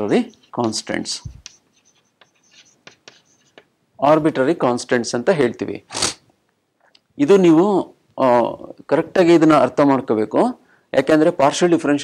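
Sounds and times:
chalk writing on chalkboard: 0.0 - 3.7.

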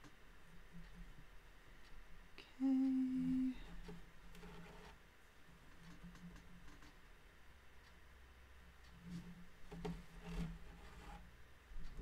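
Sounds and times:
woman humming: 2.4 - 3.7.

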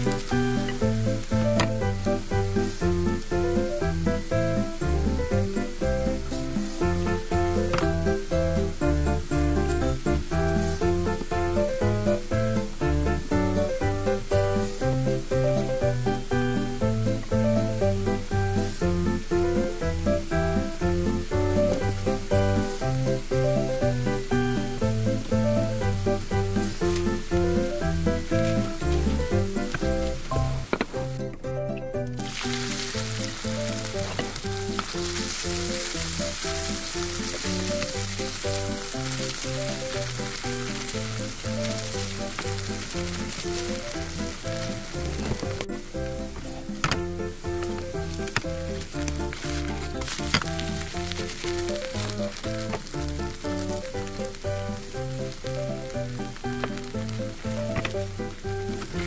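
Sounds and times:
potatoes sizzling in a pan: 0.0 - 31.3, 32.2 - 59.0
background music with steady beat: 0.0 - 59.0.

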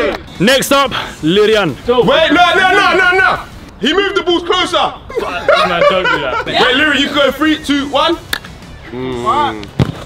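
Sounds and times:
football kicked thud: 9.8 - 10.0.

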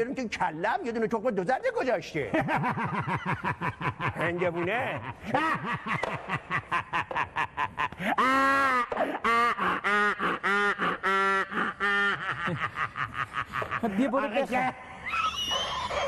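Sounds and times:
man laughing theatrically: 2.3 - 15.9.

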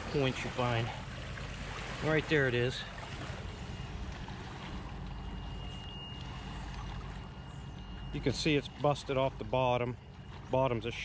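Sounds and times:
river water washing against bank: 0.0 - 11.0
faint high-pitched tone: 3.6 - 11.0.

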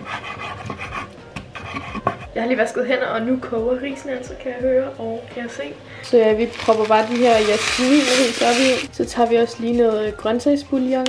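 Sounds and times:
knife slicing through meat: 6.5 - 8.9.

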